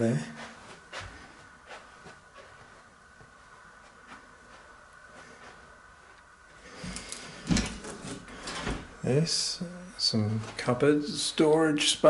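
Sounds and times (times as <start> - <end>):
man's voice: 9.0 - 12.0.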